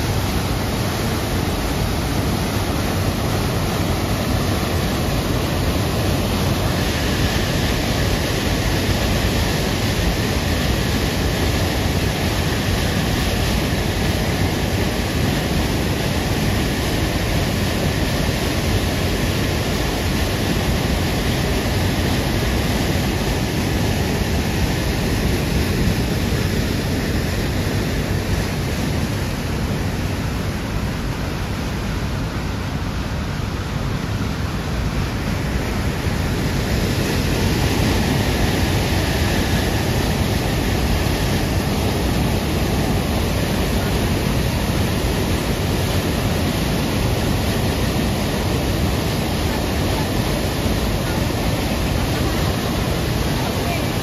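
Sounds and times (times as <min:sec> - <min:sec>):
water rushing over rocks: 0:00.0 - 0:54.0.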